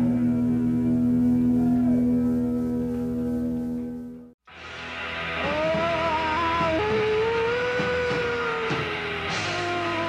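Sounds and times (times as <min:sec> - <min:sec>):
electric guitar sustained notes: 0:00.0 - 0:10.0.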